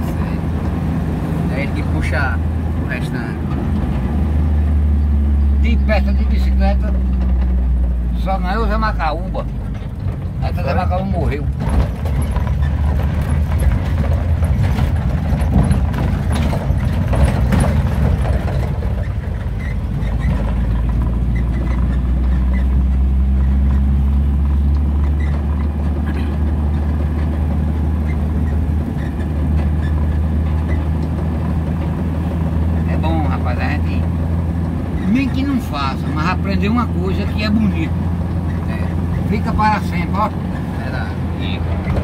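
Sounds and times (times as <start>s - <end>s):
car engine and road noise: 0.0s - 42.0s.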